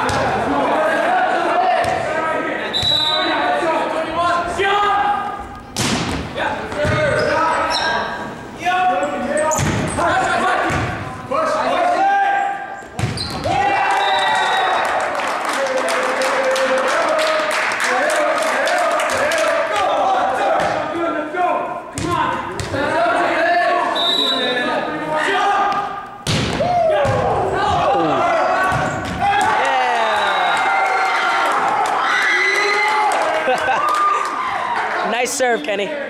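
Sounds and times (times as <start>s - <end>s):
people shouting and chattering: 0.0s - 36.0s
sharp volleyball hit: 5.8s - 7.1s, 9.6s - 9.9s, 13.0s - 13.6s, 25.7s - 27.9s
people laughing: 33.2s - 34.7s.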